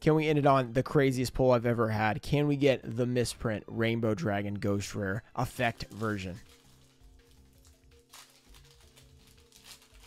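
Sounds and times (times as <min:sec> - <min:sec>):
quiet background music: 0:00.0 - 0:10.0
foil pack tearing: 0:05.7 - 0:10.0.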